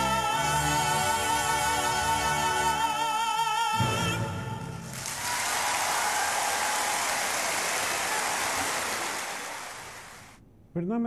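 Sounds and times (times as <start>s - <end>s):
large audience applauding: 4.9s - 10.4s.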